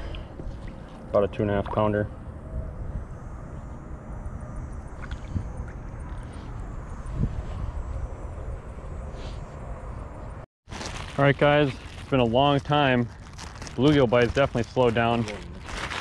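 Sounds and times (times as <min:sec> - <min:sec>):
wind buffeting microphone: 0:01.5 - 0:10.4.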